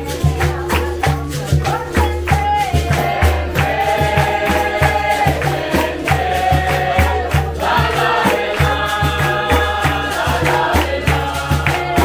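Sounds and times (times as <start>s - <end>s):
hand clapping: 0.0s - 12.0s
pandeiros: 0.0s - 12.0s
group singing a chorus: 2.6s - 12.0s.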